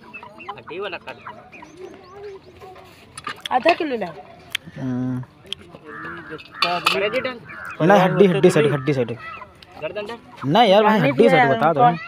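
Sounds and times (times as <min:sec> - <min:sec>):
chickens clucking: 0:00.0 - 0:12.0.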